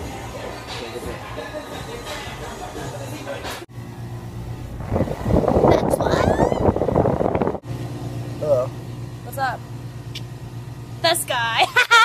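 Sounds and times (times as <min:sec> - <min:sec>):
steady low hum: 0:03.7 - 0:11.9.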